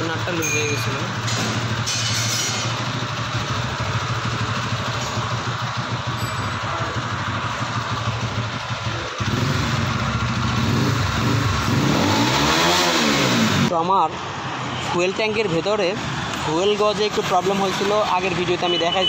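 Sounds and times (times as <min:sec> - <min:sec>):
vehicle engine running: 0:00.0 - 0:13.7.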